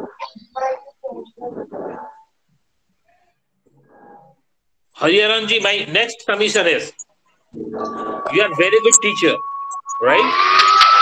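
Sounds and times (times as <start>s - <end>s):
person speaking: 8.3s - 9.4s.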